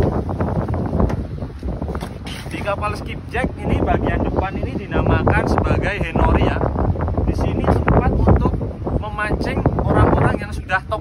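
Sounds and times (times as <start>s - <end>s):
footsteps on boat deck: 0.0s - 3.1s
wind buffeting microphone: 0.0s - 11.0s.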